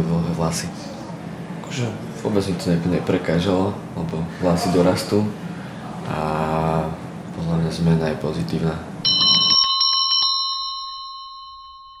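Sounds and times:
bell-like chime ringing: 9.0s - 12.0s.

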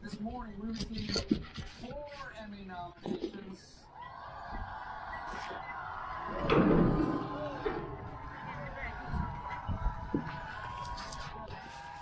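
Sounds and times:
faint television voices: 0.0s - 12.0s.

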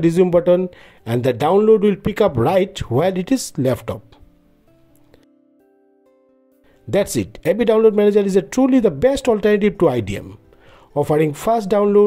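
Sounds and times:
faint background music: 0.0s - 12.0s.

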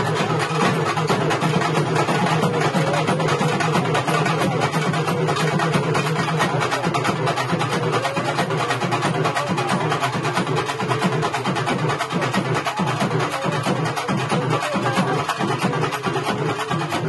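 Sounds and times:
fast dense drumming: 0.0s - 17.0s.

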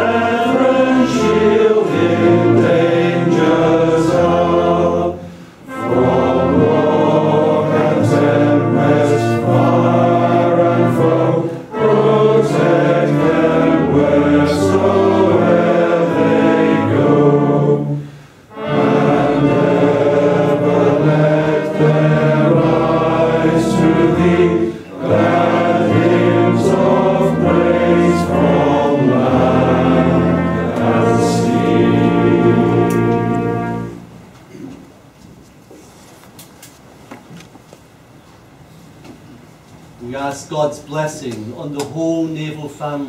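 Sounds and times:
congregation singing a hymn: 0.0s - 34.2s.

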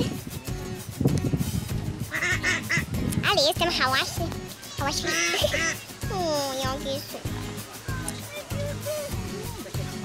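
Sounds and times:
ducks quacking: 2.1s - 3.0s, 3.7s - 6.2s.

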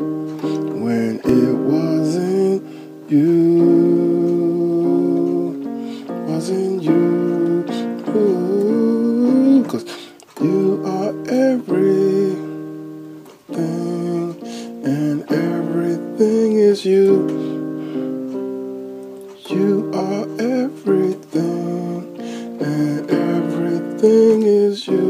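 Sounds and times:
electronic keyboard sustained chords: 0.0s - 25.0s.

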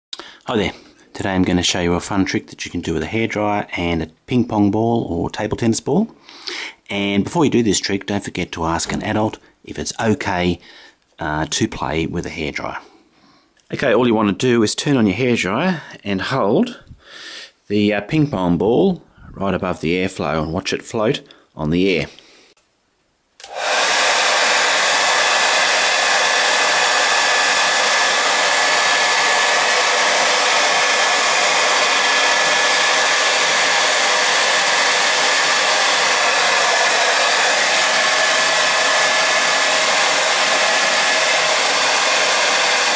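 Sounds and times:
hair dryer blowing: 23.4s - 42.9s.

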